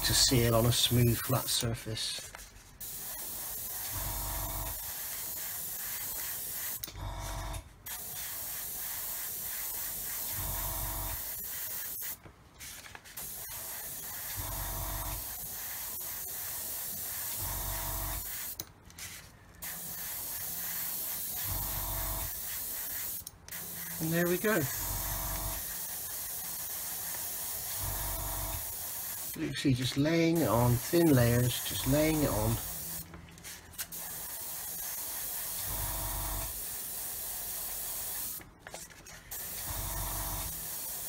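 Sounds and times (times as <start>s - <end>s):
airbrush hissing: 2.8s - 6.8s, 7.9s - 12.2s, 13.1s - 18.6s, 19.6s - 33.0s, 33.9s - 38.4s.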